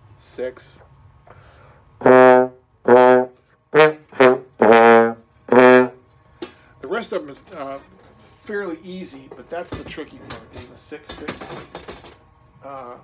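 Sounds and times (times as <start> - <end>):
trombone played slowly: 2.0 - 6.0.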